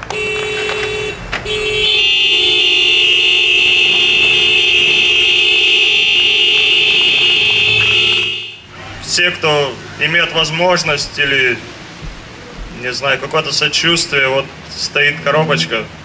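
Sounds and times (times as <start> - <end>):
lower-pitched vehicle horn: 0.0 - 9.0
vehicle horns blasting: 0.0 - 12.4.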